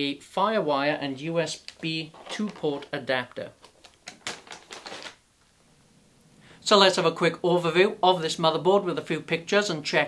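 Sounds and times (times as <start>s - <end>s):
plastic bag crinkling: 1.5s - 5.2s.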